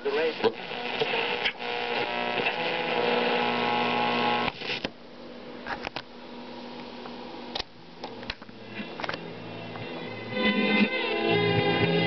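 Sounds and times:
radio tuning tones: 0:00.0 - 0:04.8.

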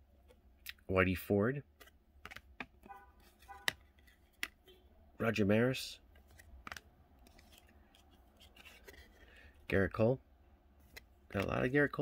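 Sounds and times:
cards rustling: 0:01.7 - 0:04.6, 0:06.0 - 0:10.0, 0:10.8 - 0:12.0.

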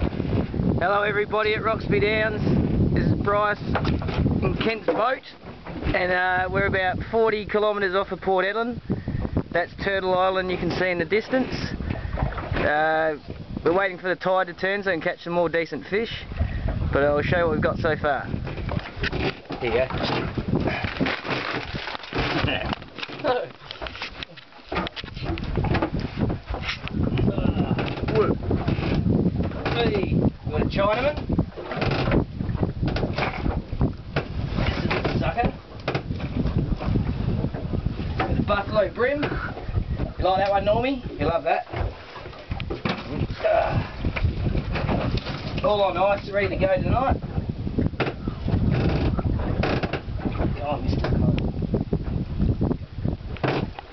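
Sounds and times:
wind rumble on microphone: 0:00.0 - 0:53.9
ice and fish rattling: 0:19.5 - 0:24.1.

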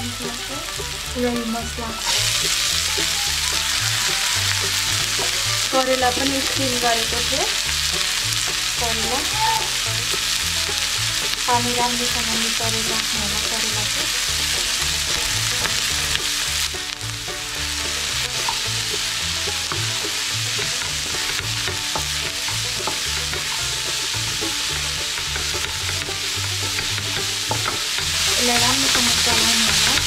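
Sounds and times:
vegetables sizzling in a frying pan: 0:00.0 - 0:30.0
wooden spatula scraping a pan: 0:00.2 - 0:30.0.

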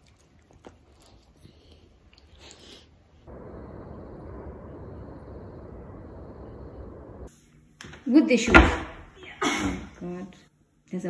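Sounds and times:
outdoor low rumble: 0:03.2 - 0:07.3.

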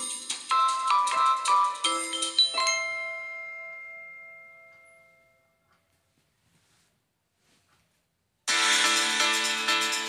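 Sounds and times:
bell-like mallet music: 0:00.0 - 0:05.7.

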